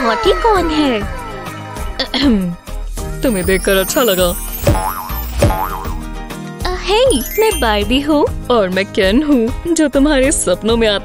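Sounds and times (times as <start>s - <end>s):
background music: 0.0s - 11.0s
small wobbling tones: 3.6s - 6.0s
cartoon boing sound effect: 4.5s - 6.0s.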